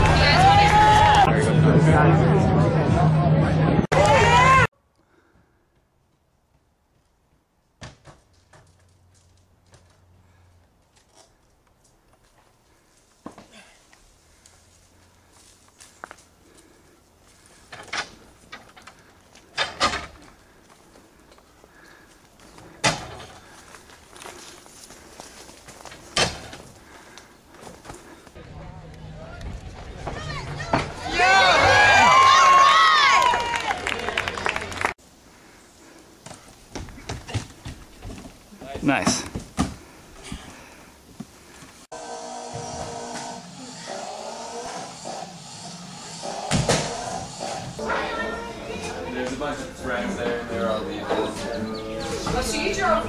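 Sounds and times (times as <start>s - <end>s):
crowd shouting and cheering: 0.0s - 4.7s, 29.1s - 34.9s.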